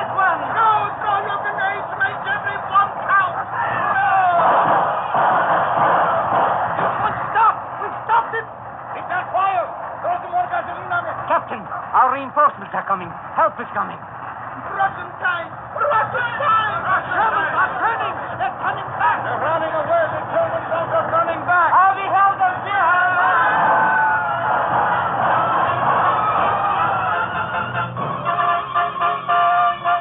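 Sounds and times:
noisy battle din: 0.0 - 29.3
men shouting and yelling: 0.0 - 30.0.

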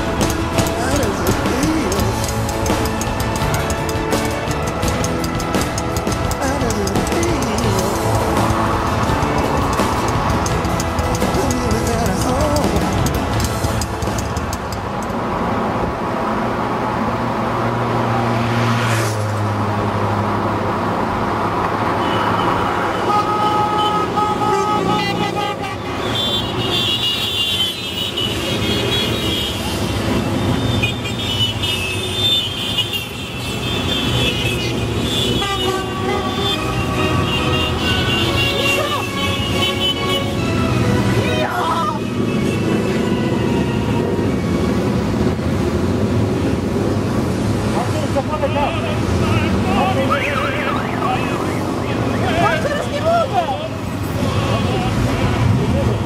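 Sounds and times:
background music: 0.0 - 15.0, 35.3 - 45.9
motorcycle engines passing: 0.0 - 56.0
motorcycle horns tooting: 22.0 - 44.2.

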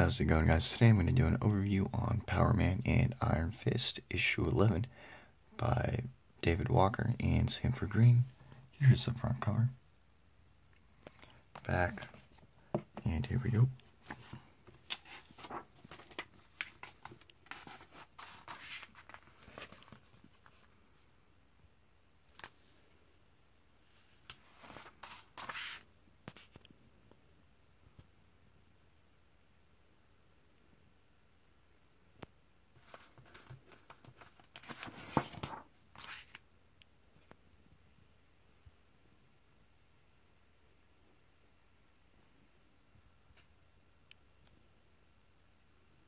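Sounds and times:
comic book pages flipping: 11.0 - 20.7, 22.3 - 23.0, 23.9 - 26.7, 32.8 - 36.4.

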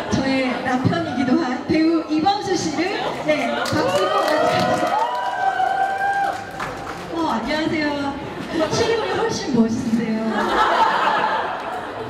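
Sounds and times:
woman calling into a microphone: 0.0 - 4.9, 7.1 - 10.4.

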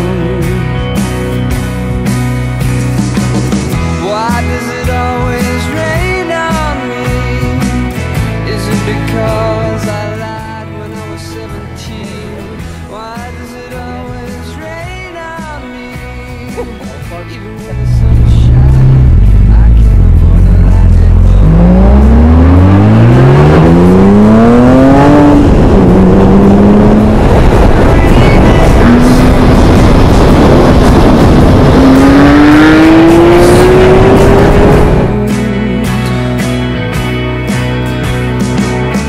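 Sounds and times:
wind and road noise: 11.1 - 35.5
car engine accelerating hard: 16.5 - 36.6.

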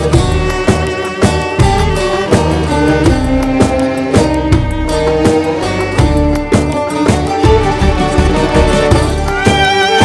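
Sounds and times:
instrumental music with steady beat: 0.0 - 10.0.

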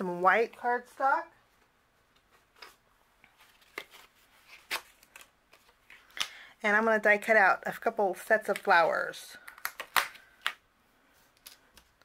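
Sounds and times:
faint paper rustling: 0.8 - 6.3.

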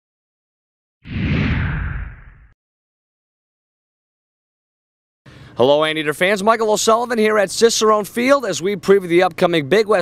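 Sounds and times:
whoosh with deep low rumble: 1.1 - 2.6.

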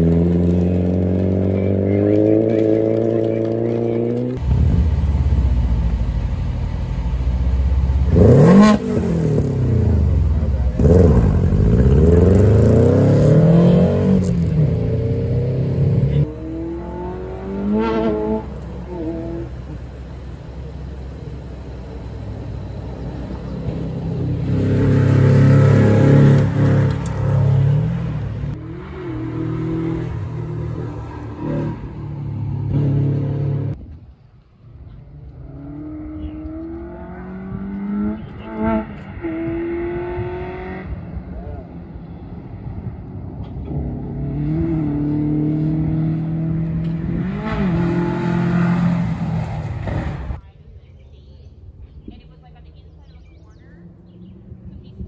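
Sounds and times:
rally car engines revving: 0.0 - 33.8, 34.8 - 50.4.

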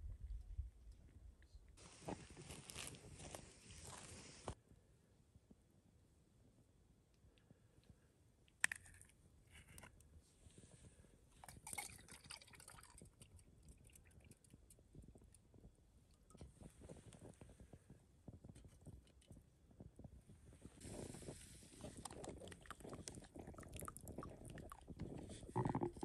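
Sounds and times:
crinkly plastic noise: 1.8 - 4.6, 20.7 - 26.0.

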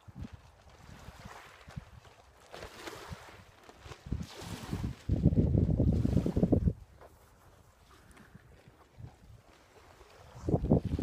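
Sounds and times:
wind buffeting microphone: 3.0 - 7.0, 8.0 - 11.0.

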